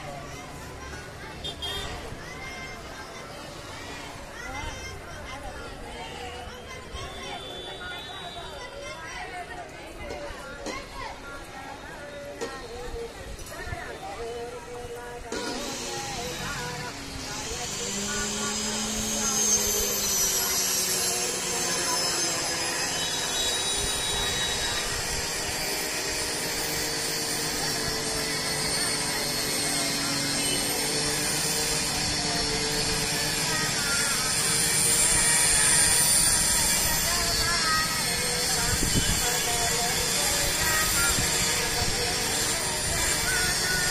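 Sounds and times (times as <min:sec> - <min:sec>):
voices of street procession: 0:00.0 - 0:43.9
long held tones: 0:16.1 - 0:43.9.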